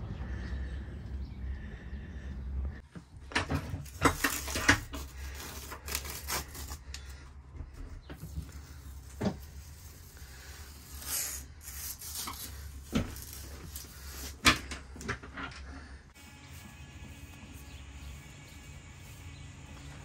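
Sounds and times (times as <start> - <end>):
steady low hum: 12.6 - 20.0.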